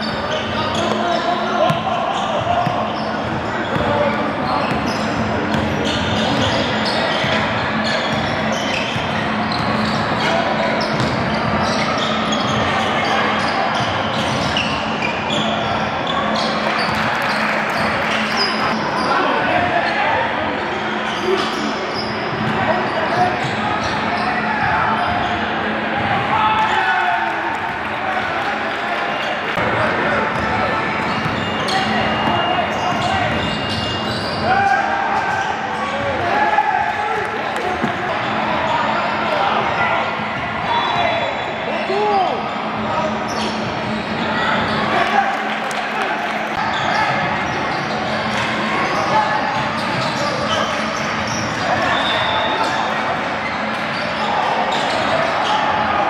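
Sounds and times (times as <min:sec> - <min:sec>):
sneakers squeaking: 0:00.0 - 0:20.0, 0:20.6 - 0:27.0, 0:29.0 - 0:45.1, 0:46.2 - 0:56.0.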